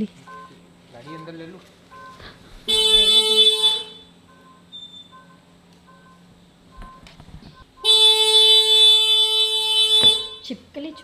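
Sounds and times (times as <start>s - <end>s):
turn indicator beeping: 0.2s - 2.2s, 4.2s - 8.0s, 9.8s - 11.0s
scooter electric horn: 1.9s - 5.4s, 7.8s - 10.5s.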